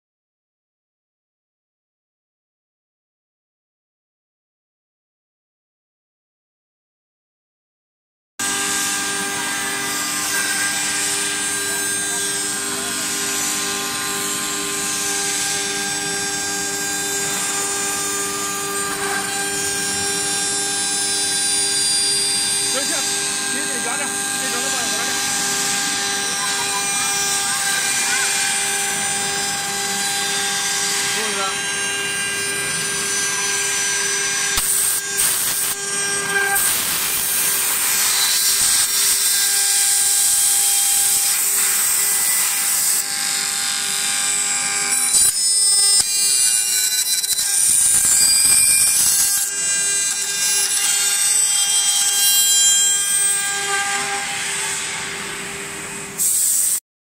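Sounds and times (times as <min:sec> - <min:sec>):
machine whine: 0:08.4 - 0:56.8
rough wood cutting noise: 0:08.4 - 0:56.8.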